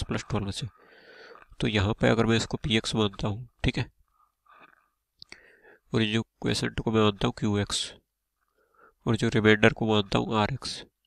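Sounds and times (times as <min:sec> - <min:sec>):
man speaking: 0:00.0 - 0:00.8, 0:01.6 - 0:03.9, 0:05.9 - 0:08.0, 0:09.0 - 0:10.9
man breathing faintly: 0:00.7 - 0:01.6, 0:04.1 - 0:05.9, 0:08.4 - 0:09.0.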